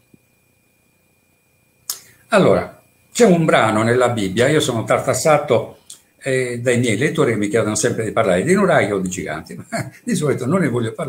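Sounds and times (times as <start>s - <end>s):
sharp click: 1.9s - 2.1s.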